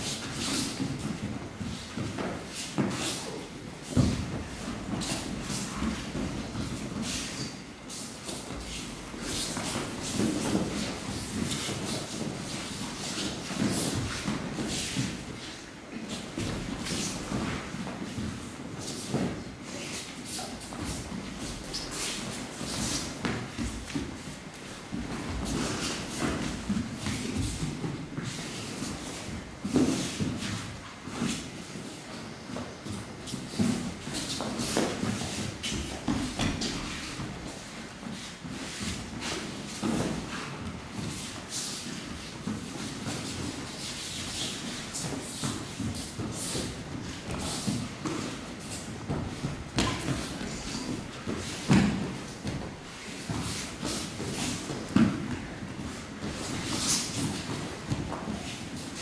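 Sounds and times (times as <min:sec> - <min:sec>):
bare feet on mats: 0:00.0 - 0:59.0
uniforms rustling: 0:00.0 - 0:59.0
bodies thudding on mats: 0:44.5 - 0:59.0.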